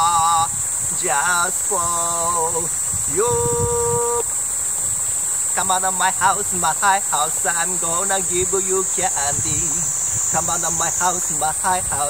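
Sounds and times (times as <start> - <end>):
man singing unaccompanied: 0.0 - 4.5, 5.4 - 12.0
high insect chorus: 0.0 - 12.0.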